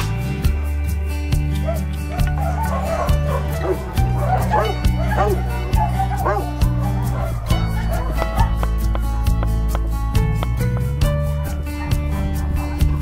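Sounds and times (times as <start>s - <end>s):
background music with steady beat: 0.0s - 13.0s
puppy whining and yelping: 1.7s - 8.8s.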